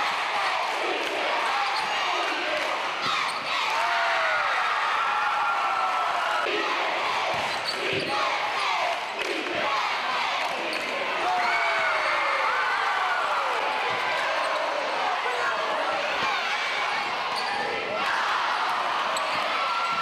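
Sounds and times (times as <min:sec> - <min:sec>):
crowd chatter and shouting: 0:00.0 - 0:20.0
sneakers squeaking: 0:03.0 - 0:03.6, 0:07.3 - 0:08.3, 0:17.0 - 0:17.8, 0:19.1 - 0:20.0.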